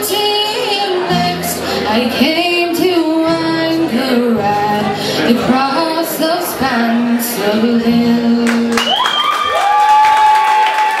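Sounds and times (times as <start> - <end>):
audience clapping: 8.4 - 11.0
audience cheering: 8.7 - 11.0.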